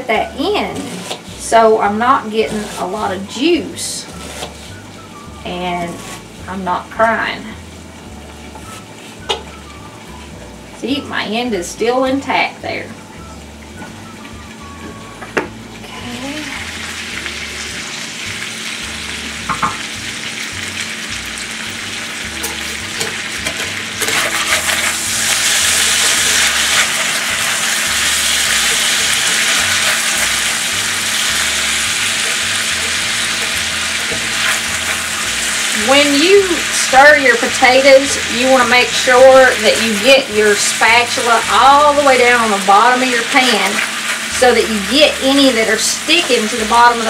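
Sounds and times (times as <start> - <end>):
potatoes sizzling in oil: 0.0 - 47.0
metal spatula scraping pan: 0.3 - 4.9, 5.5 - 6.6, 22.3 - 38.2.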